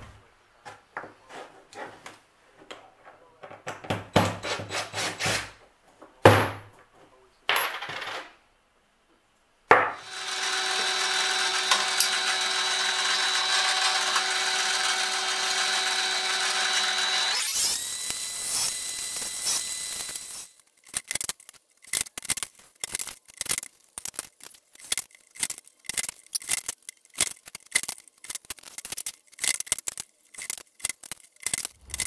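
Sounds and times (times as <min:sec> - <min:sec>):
drill press running: 0:10.0 - 0:20.6
small parts clicking and clattering: 0:14.8 - 0:32.0.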